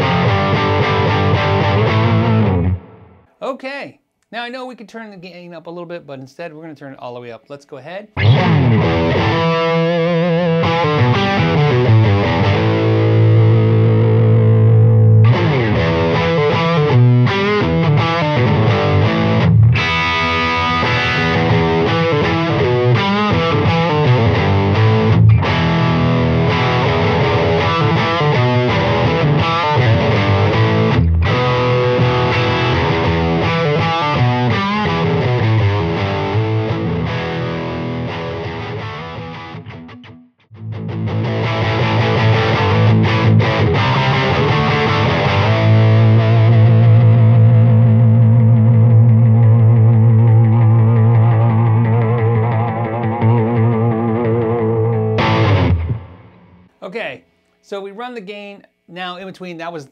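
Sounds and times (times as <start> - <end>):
overdriven electric guitar: 0.0 - 3.3, 8.2 - 56.8.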